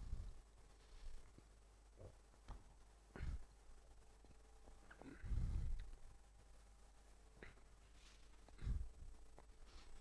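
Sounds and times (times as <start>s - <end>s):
muffled low rumble: 0.0s - 2.2s, 2.8s - 10.0s
faint room hum: 0.0s - 10.0s.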